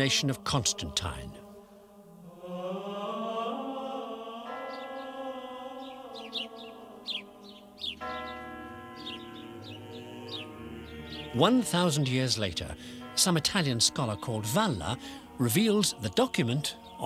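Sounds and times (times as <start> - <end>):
choral chant: 0.0 - 17.0
high chirps: 5.8 - 11.4.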